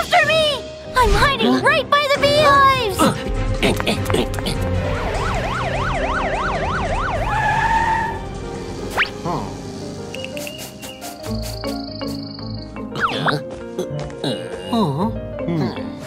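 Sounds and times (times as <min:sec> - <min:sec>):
background music: 0:00.0 - 0:16.0
cartoon police siren yelp: 0:05.0 - 0:08.2.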